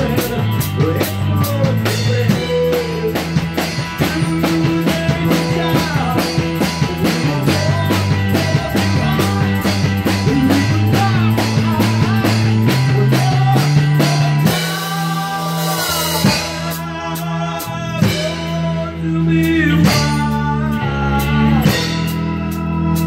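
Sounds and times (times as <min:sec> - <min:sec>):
drum kit beat: 0:00.0 - 0:23.0
electric bass: 0:00.0 - 0:23.0
electric guitar: 0:00.0 - 0:23.0.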